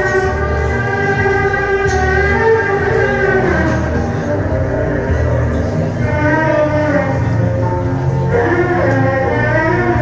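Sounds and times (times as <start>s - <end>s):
pulsing bass: 0.0s - 10.0s
sustained synth chords: 0.0s - 10.0s.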